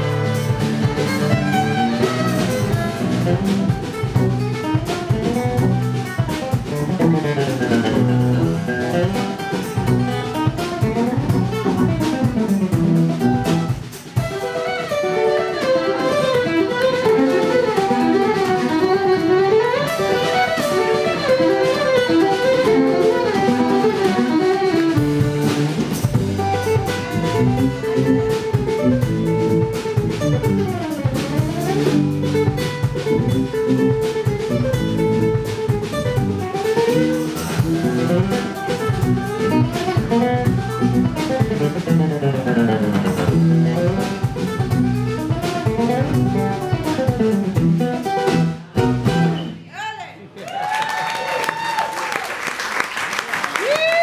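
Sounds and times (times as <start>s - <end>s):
gypsy jazz guitar fiddle and drums: 0.0s - 49.7s.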